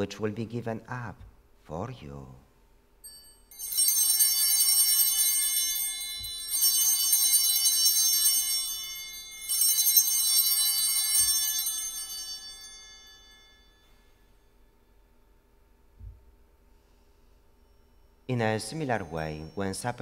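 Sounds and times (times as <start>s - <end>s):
altar bells ringing: 3.0s - 14.8s, 17.6s - 20.0s.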